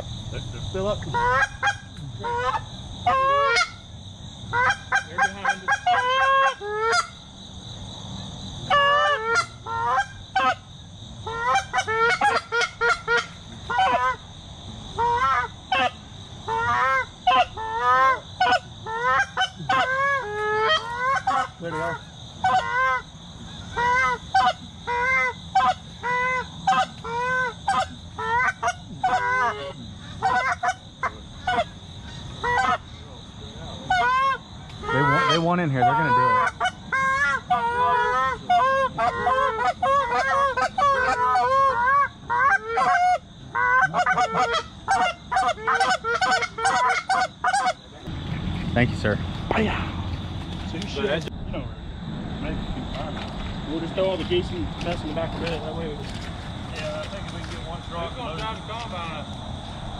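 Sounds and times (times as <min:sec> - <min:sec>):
geese honking and clucking: 0:00.0 - 0:51.8.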